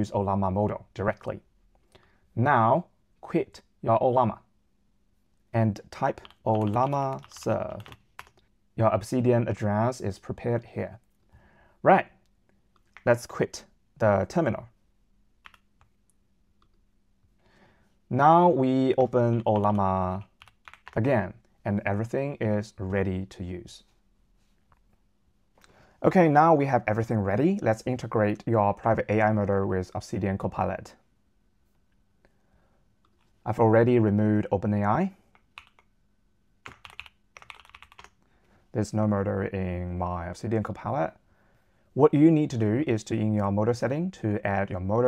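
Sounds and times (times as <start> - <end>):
keyboard typing: 6.1 - 8.4, 15.4 - 16.8, 19.2 - 21.0, 35.3 - 35.9, 36.6 - 38.2
computer mouse clicks: 15.4 - 16.0.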